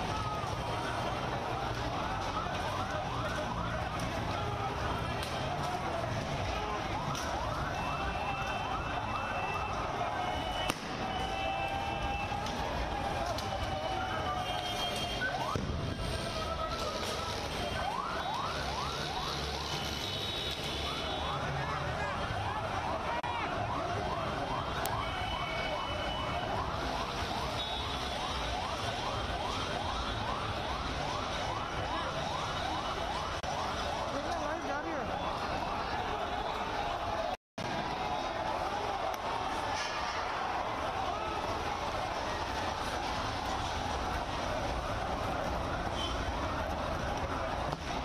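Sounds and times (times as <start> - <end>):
crowd din: 0.0 - 48.0
emergency siren yelping: 0.0 - 48.0.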